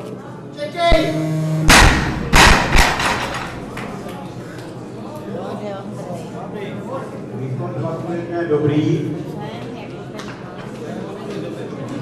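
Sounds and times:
barbell settling on platform: 0.9s - 4.2s.

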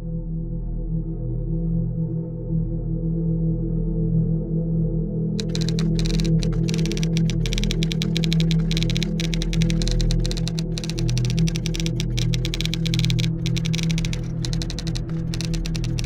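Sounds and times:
keyboard typing clicks: 5.4s - 16.0s.

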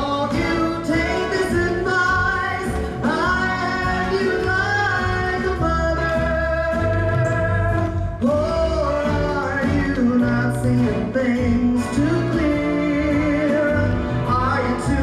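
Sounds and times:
musical accompaniment: 0.0s - 15.0s
person singing a slow ballad: 0.0s - 15.0s
steady bass line: 0.0s - 15.0s.

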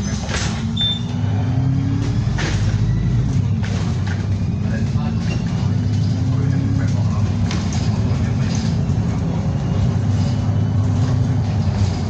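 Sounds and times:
diesel bus engine: 0.0s - 12.0s
road noise: 0.0s - 12.0s.

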